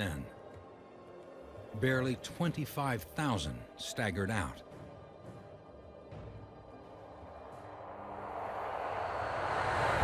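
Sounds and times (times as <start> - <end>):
rushing whoosh riser: 7.7 - 10.0.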